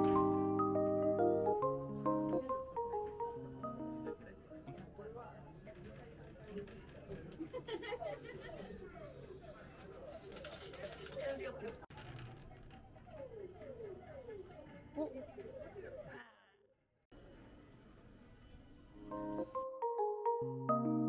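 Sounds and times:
background chatter of voices: 4.1s - 16.4s.

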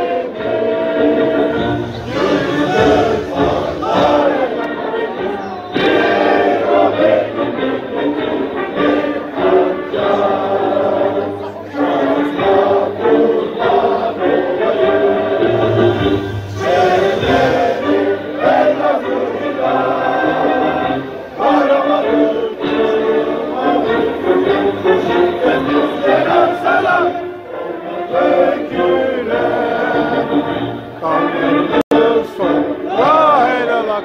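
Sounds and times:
many voices singing a march: 0.0s - 34.0s
music: 0.0s - 34.0s.

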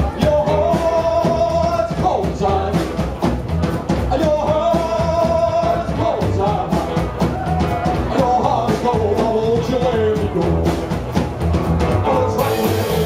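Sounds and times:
rockabilly band playing: 0.0s - 13.0s.

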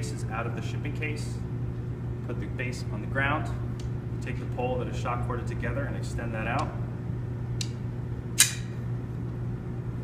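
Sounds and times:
steady low hum: 0.0s - 10.0s
sharp click of metal pole: 8.4s - 8.8s.

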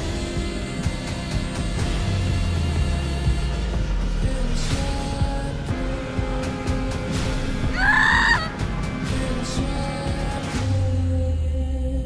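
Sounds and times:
tense trailer score: 0.0s - 12.0s
high-pitched wailing tone: 7.7s - 8.5s.

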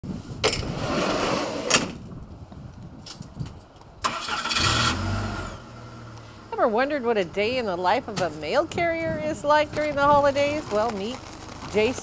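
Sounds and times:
truck engine starting: 4.0s - 6.5s.

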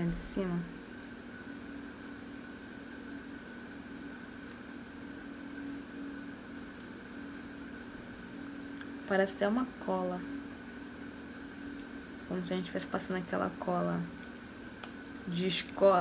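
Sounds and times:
low constant hum: 0.0s - 16.0s.

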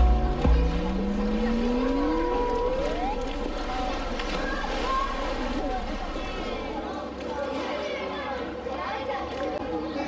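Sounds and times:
thin whine rising in pitch: 0.0s - 4.6s
water sloshing: 0.0s - 7.4s.

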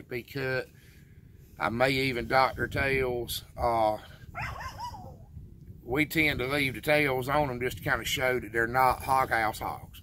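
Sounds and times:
dog whining: 4.4s - 5.3s.

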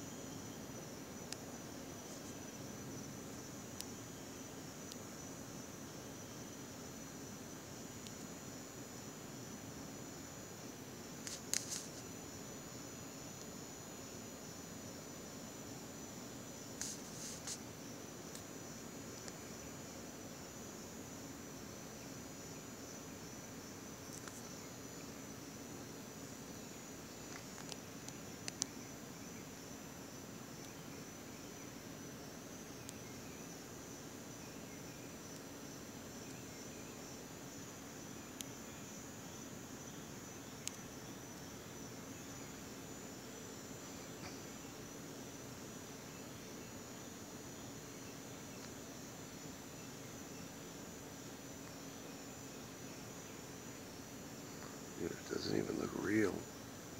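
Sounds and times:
crickets chirping: 0.0s - 56.9s.

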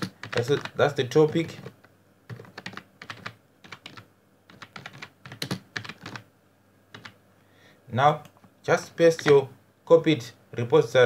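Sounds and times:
computer keyboard typing: 0.0s - 6.3s, 6.9s - 7.2s, 9.2s - 9.4s.

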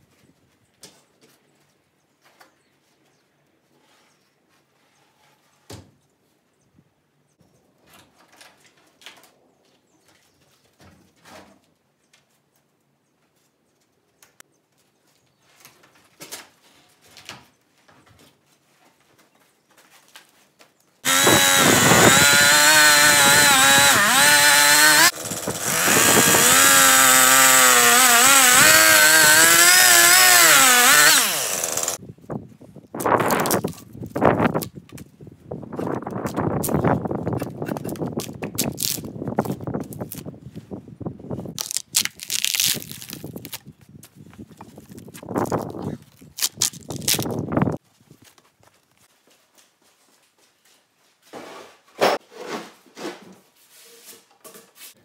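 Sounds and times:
bark tearing and scraping: 21.0s - 25.1s, 33.0s - 34.8s, 35.8s - 40.3s, 41.5s - 43.8s, 44.4s - 47.8s
chainsaw cutting log: 21.0s - 32.0s, 46.4s - 47.4s.

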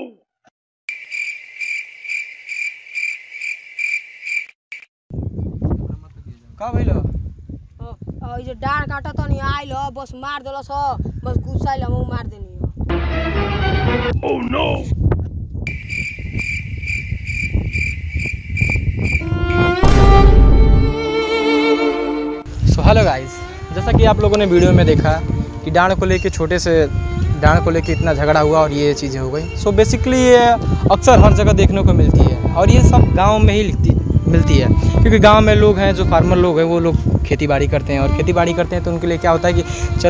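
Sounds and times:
cricket chirping: 0.9s - 4.9s, 15.7s - 19.3s
wind rumble on microphone: 5.1s - 21.0s, 22.5s - 40.0s
dramatic music: 12.9s - 14.1s, 19.2s - 22.5s
low rumble: 19.5s - 21.3s
loud deep boom: 19.8s - 21.2s.

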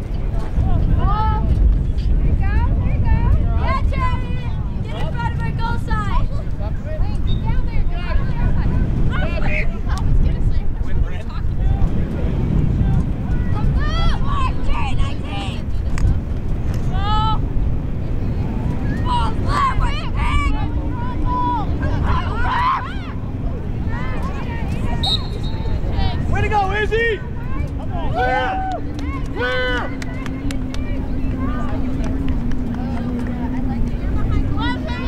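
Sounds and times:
steady low rumble: 0.0s - 35.0s
distant people shouting: 18.8s - 35.0s.

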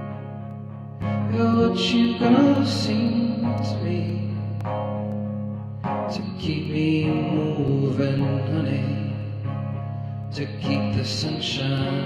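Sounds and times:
acoustic guitar: 0.0s - 12.0s
man singing wordless chant: 1.3s - 4.3s, 6.1s - 9.2s, 10.3s - 12.0s.

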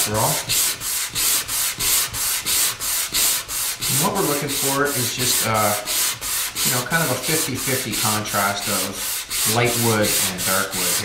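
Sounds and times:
sanding block rubbing wood: 0.0s - 11.0s.

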